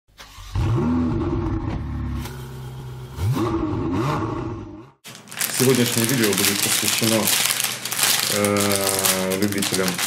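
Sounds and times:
engine revving: 0.2s - 5.0s.

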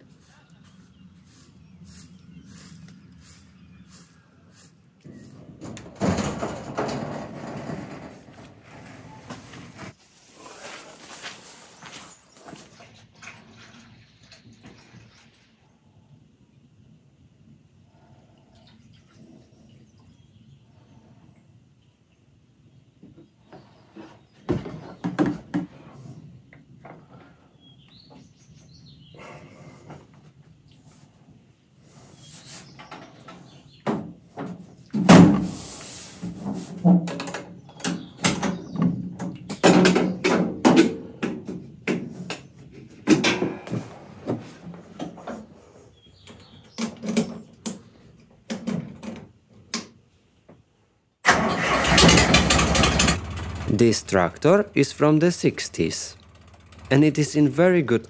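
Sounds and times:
tractor engine starting: 5.1s - 9.1s, 51.2s - 58.0s.

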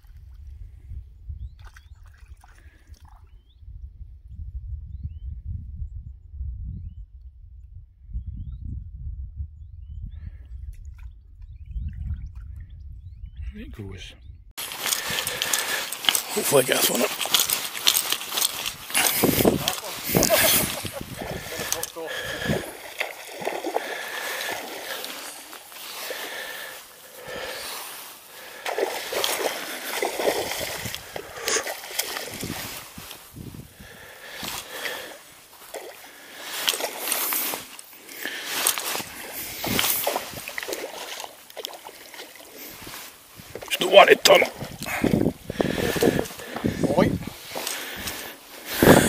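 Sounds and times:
fly line stripped by hand: 14.6s - 22.0s
fish splashing at surface: 14.6s - 33.0s, 34.2s - 42.9s.

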